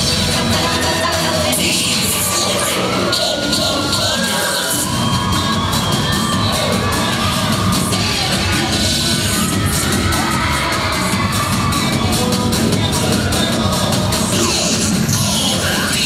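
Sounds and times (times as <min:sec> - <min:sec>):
cheerleading music with heavy bass: 0:00.0 - 0:16.0
crowd cheering and screaming: 0:00.0 - 0:16.0.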